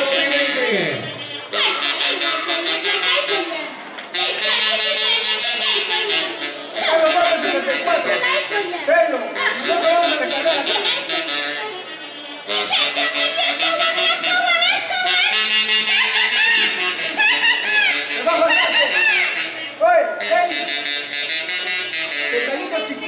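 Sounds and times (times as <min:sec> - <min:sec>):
high voices calling out: 0:00.0 - 0:23.0
live band playing folk music: 0:00.0 - 0:23.0.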